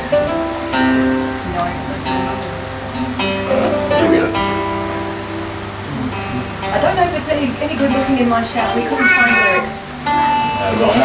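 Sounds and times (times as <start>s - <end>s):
acoustic guitar strummed chords: 0.0s - 11.0s
person speaking: 8.6s - 9.8s.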